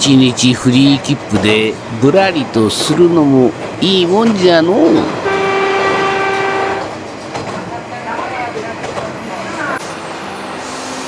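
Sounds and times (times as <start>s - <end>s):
train running along track: 0.0s - 11.0s
train horn: 5.2s - 7.0s.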